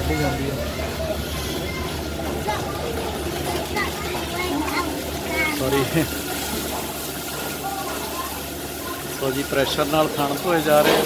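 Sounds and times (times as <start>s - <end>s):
milking machinery humming: 0.0s - 11.0s
voices talking: 0.0s - 11.0s.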